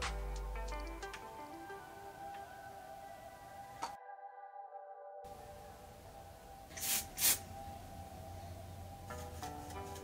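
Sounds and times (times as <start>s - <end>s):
soft background music: 0.0s - 10.0s
aerosol spray hisses: 6.7s - 7.5s.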